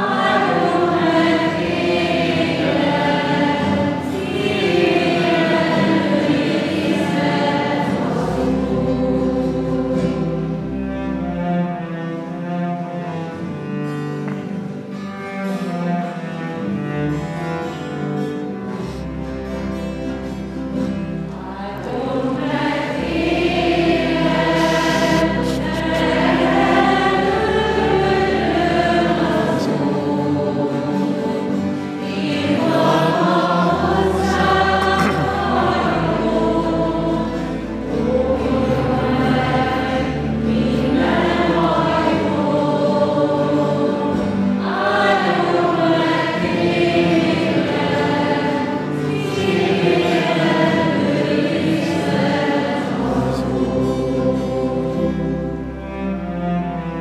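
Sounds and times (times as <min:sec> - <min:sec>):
group singing a hymn: 0:00.0 - 0:11.2, 0:19.8 - 0:56.1
acoustic guitar: 0:00.0 - 0:57.0
long held bass notes: 0:07.9 - 0:31.4, 0:32.3 - 0:47.0.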